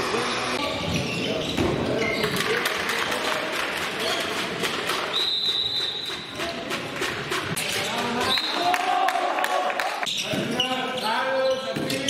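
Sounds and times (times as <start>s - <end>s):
players' voices: 0.0s - 5.2s, 6.1s - 12.0s
ball bouncing on hall floor: 0.8s - 8.9s, 11.6s - 12.0s
referee's whistle: 5.1s - 6.3s.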